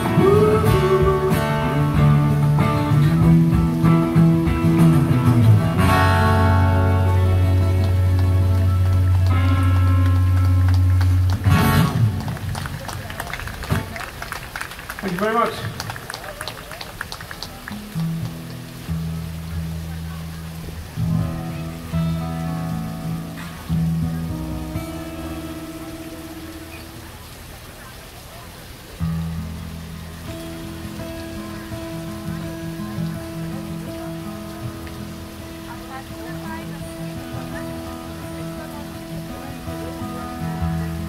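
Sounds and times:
band with acoustic guitars: 0.0 - 41.0
fountain water splashing: 0.0 - 41.0.

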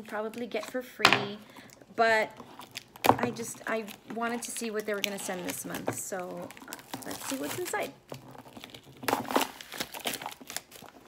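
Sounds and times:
plastic shrink-wrap crinkling: 1.6 - 11.0.

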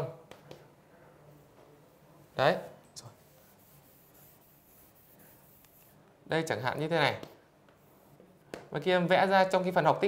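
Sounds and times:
chalk scratching on blackboard: 3.0 - 6.0.

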